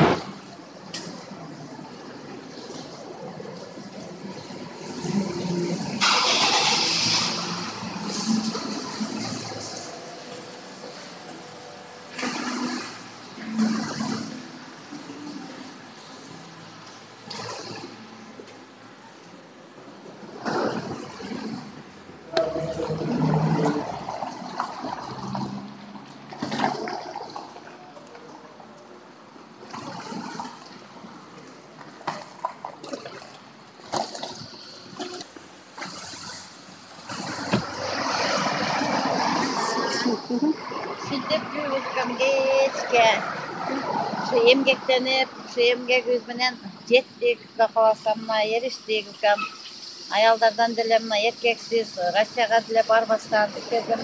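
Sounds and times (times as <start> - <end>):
water rushing and splashing: 0.0 - 54.0.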